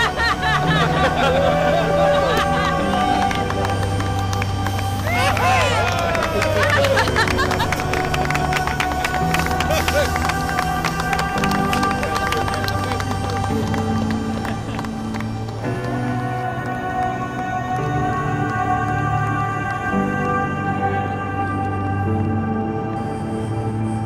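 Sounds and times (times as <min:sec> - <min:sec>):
background music with bass: 0:00.0 - 0:24.0
group of voices rising: 0:05.0 - 0:13.5.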